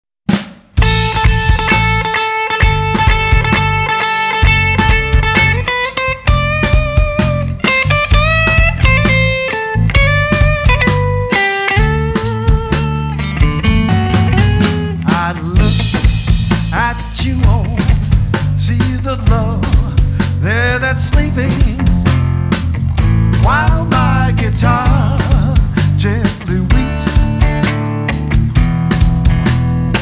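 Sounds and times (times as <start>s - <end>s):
drum kit: 0.2s - 30.0s
bass guitar: 0.7s - 30.0s
lead guitar bending notes: 0.8s - 18.4s, 21.4s - 30.0s.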